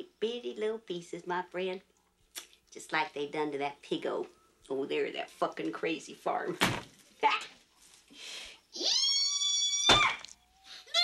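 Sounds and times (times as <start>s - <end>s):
high drawn-out cry: 8.7s - 11.0s.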